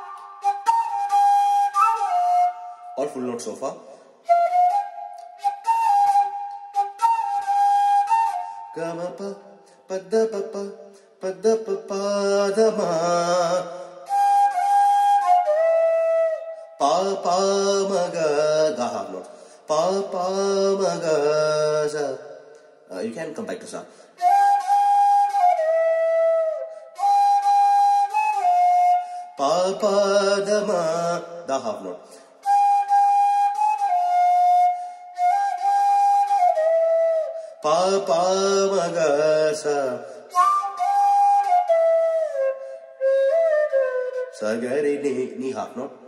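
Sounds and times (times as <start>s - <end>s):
bamboo flute melody: 0.0s - 3.3s, 4.2s - 9.5s, 11.8s - 18.8s, 24.2s - 31.2s, 32.4s - 44.8s.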